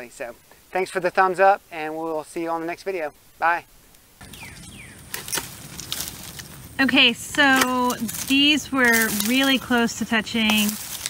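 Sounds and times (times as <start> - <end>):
faint outdoor background: 0.0 - 11.0
loppers clicking and snapping: 7.2 - 11.0.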